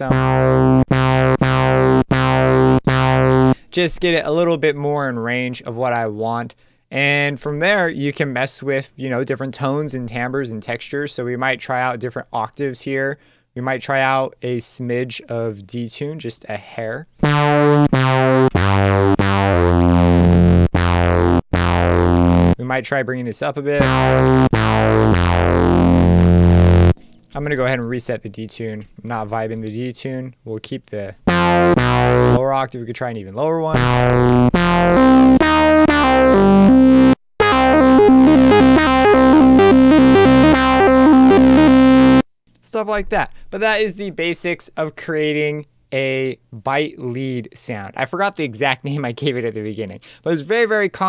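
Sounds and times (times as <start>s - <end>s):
buzzy synthesizer bass notes: 0.0s - 3.6s, 17.2s - 22.7s, 23.8s - 27.7s, 31.2s - 32.5s, 33.7s - 42.3s.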